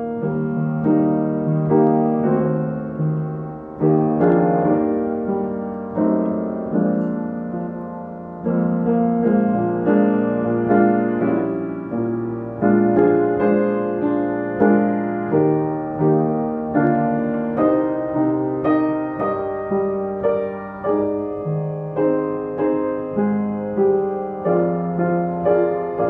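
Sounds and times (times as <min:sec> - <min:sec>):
piano playing slow chords: 0:00.0 - 0:26.0.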